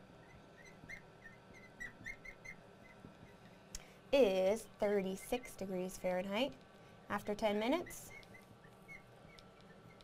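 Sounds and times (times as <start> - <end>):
marker squeaking on glass: 0.2 - 3.4, 8.1 - 10.0.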